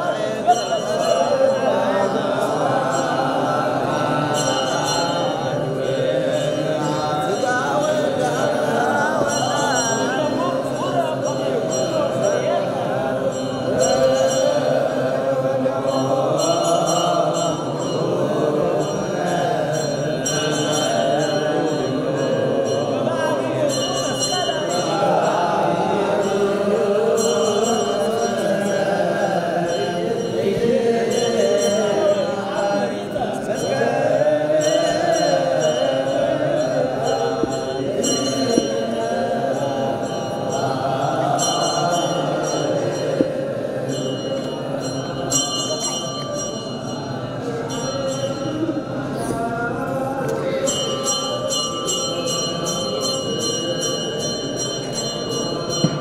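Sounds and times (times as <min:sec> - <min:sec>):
men chanting in held notes: 0:00.0 - 0:46.2.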